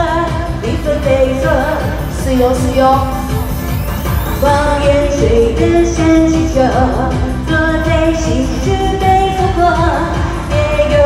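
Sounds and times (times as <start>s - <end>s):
woman singing into microphone: 0.0s - 3.4s, 4.4s - 11.0s
amplified pop backing track: 0.0s - 11.0s.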